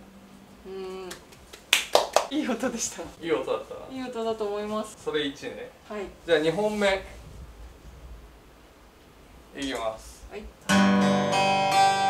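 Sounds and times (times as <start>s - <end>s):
hand claps: 1.0s - 2.3s, 9.6s - 9.9s
acoustic guitar chord ringing: 10.7s - 12.0s.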